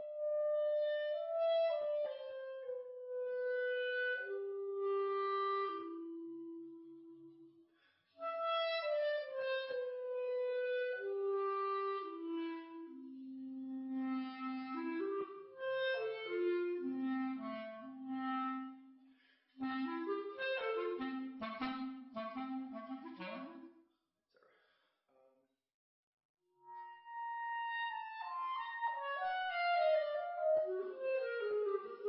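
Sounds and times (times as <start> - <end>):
solo clarinet: 0.0 - 7.6, 8.2 - 19.0, 19.6 - 23.8, 26.6 - 32.0.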